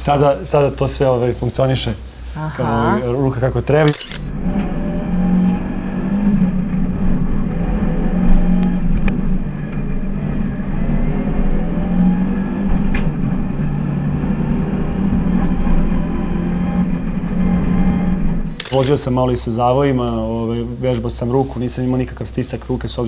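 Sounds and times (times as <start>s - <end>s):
race car engine at high revs: 4.4s - 18.4s.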